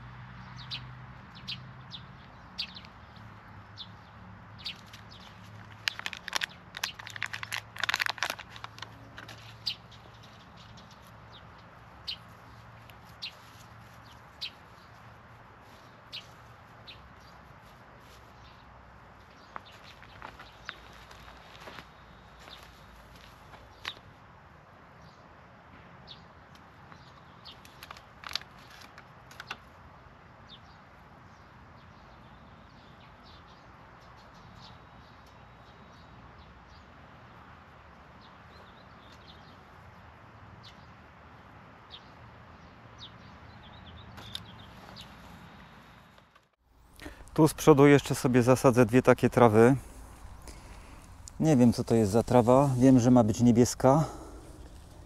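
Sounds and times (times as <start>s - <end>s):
plastic pots rustling and clicking: 4.7s - 11.2s, 27.5s - 29.7s.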